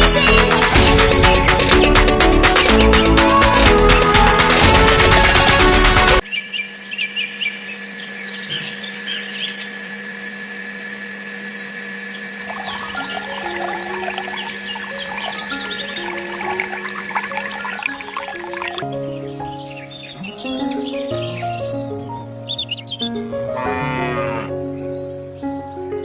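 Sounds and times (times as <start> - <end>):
music: 0.0 - 6.2, 12.7 - 26.0
electric motor humming: 6.2 - 18.8
water pouring into a channel: 12.5 - 18.8.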